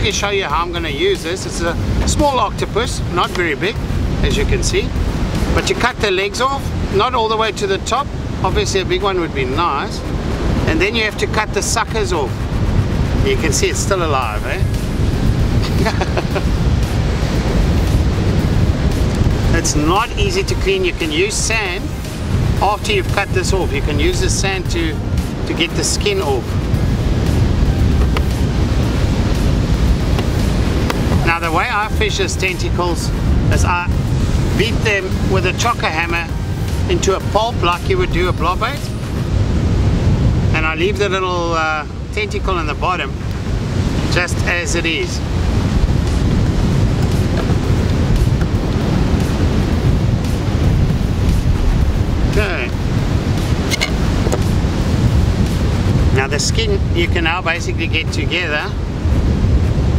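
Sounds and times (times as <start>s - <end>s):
breaking surf: 0.0s - 59.9s
wind buffeting microphone: 0.0s - 59.9s.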